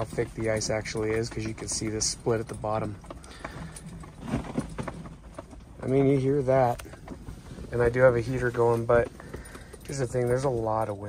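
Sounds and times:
low steady background noise: 0.0s - 11.0s.

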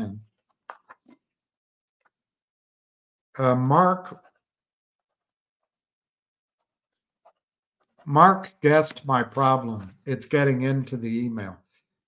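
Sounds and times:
pen scratching on paper: 4.1s - 5.9s, 6.6s - 8.1s.

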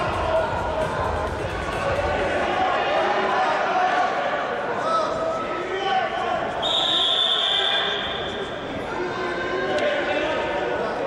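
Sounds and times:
referee's whistle: 6.6s - 8.7s.

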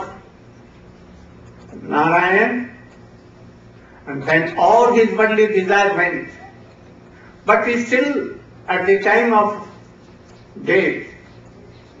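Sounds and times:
low steady hum: 0.0s - 12.0s
man lecturing: 1.8s - 2.9s, 4.1s - 6.4s, 7.4s - 9.8s, 10.6s - 11.3s.

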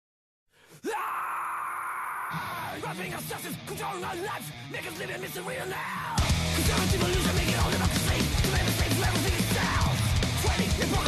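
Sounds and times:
rising cry: 0.7s - 2.8s
harsh sustained scream: 0.7s - 2.9s, 9.0s - 11.0s.

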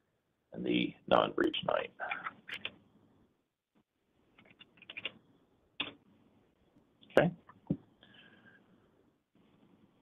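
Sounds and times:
computer keyboard keystrokes: 4.4s - 5.2s.

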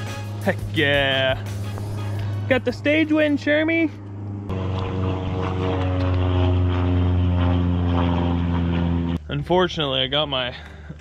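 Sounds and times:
steady engine hum: 0.0s - 11.0s.

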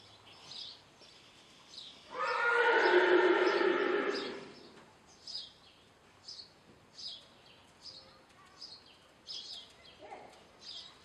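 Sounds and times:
horse whinnying: 2.1s - 4.6s.

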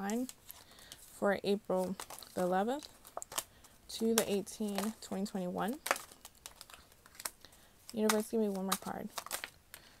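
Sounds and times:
cards being shuffled: 0.0s - 10.0s.

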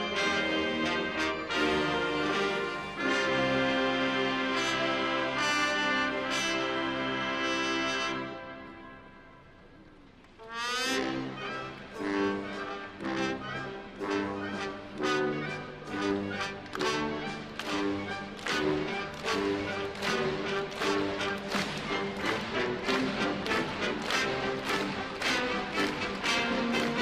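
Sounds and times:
brass band playing a march: 0.0s - 9.1s, 10.4s - 27.0s.

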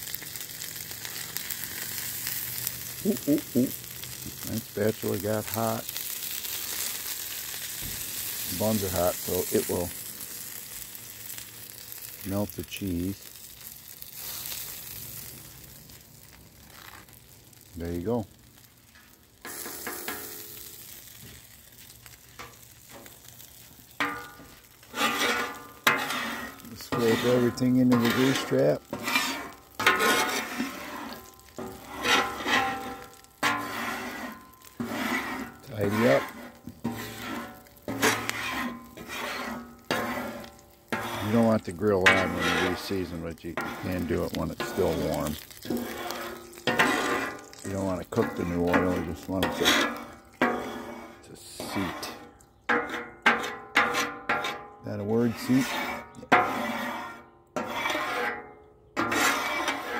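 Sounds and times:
burger sizzling on griddle: 0.0s - 59.9s.

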